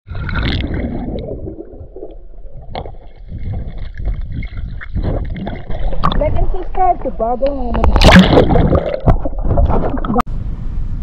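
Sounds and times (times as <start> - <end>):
underwater water churning: 0.1 - 6.7, 7.8 - 10.2.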